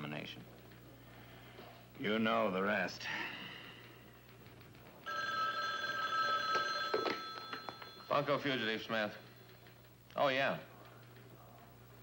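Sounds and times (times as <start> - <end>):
telephone bell ringing: 5.1 - 9.0.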